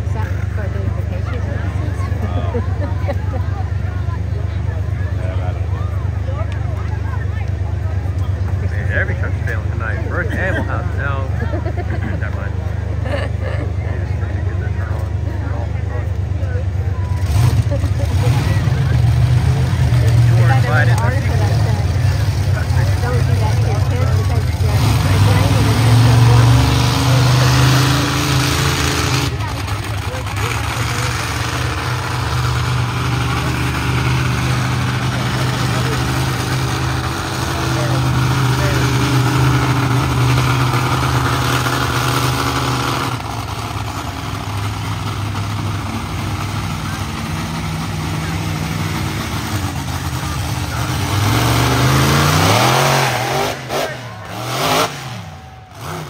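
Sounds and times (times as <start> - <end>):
monster truck engine revving: 0.0 - 56.0.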